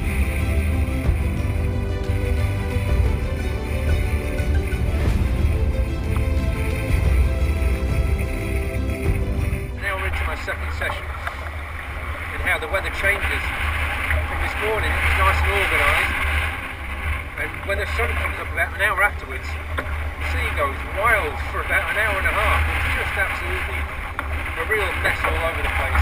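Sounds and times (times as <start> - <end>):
wind buffeting microphone: 4.1 - 26.0
man talking: 9.8 - 11.4, 12.3 - 13.6, 14.4 - 16.2, 17.4 - 19.6, 20.2 - 24.0, 24.6 - 26.0.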